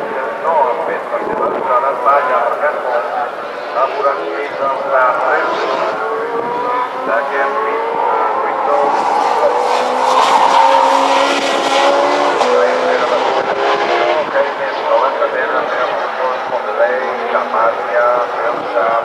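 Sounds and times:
race car engine: 0.0s - 19.0s.

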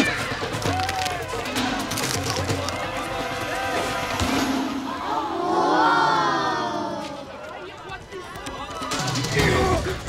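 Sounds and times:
crowd hubbub: 0.0s - 10.0s
children exclaiming: 4.9s - 7.3s.

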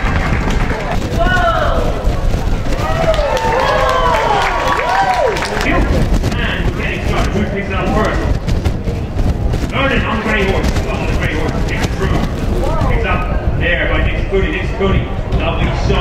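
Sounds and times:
hoofbeats galloping on grass: 0.0s - 14.1s
steady low rumble: 0.0s - 16.0s
people talking indistinctly: 0.5s - 16.0s.

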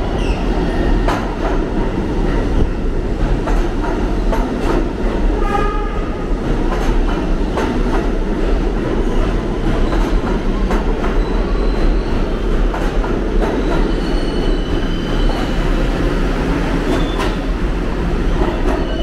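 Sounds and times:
subway train rumble: 0.0s - 19.0s
high wheel squeal: 13.9s - 15.6s.

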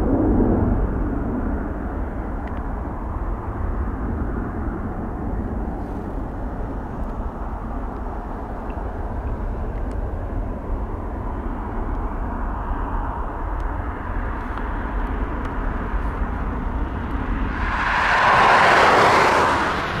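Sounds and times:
jet engines rumbling: 0.0s - 20.0s
rushing noise: 16.6s - 20.0s.

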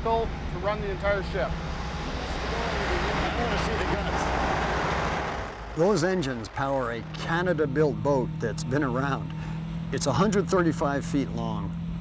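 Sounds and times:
engine-room machinery drone: 0.0s - 12.0s.

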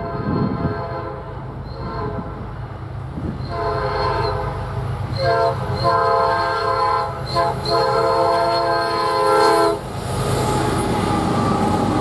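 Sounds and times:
locomotive air horn blasts: 0.0s - 2.5s, 3.4s - 9.8s
train rumble: 0.0s - 12.0s.

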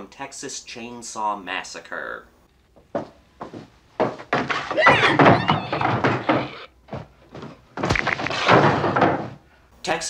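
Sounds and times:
shrill animal-like squealing: 4.7s - 6.7s
sharp thud: 7.8s - 9.3s.

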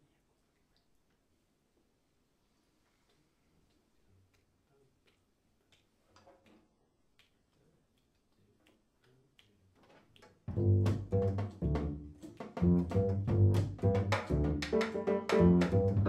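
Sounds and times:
soft low notes: 10.5s - 14.6s
double bass plucked notes: 10.5s - 16.0s.

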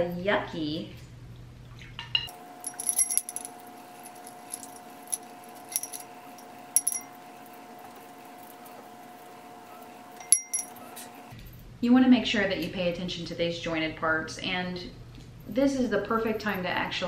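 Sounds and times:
faint steady hum: 2.4s - 11.3s
metal horse bit clinking: 2.6s - 7.1s, 10.2s - 10.8s.

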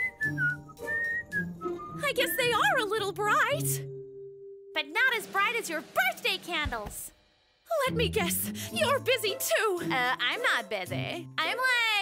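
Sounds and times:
whistled tune: 0.0s - 3.0s
faint background music: 4.8s - 12.0s.

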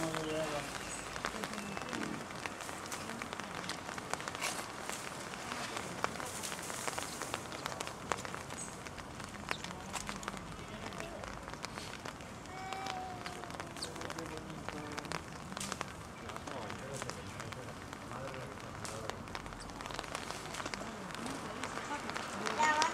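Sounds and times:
faint voices: 0.0s - 22.9s
rain pattering: 0.0s - 22.9s.

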